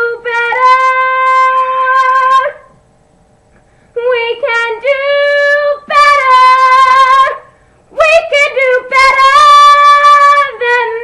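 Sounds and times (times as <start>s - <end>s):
girl singing unaccompanied: 0.0s - 2.7s, 4.0s - 11.0s.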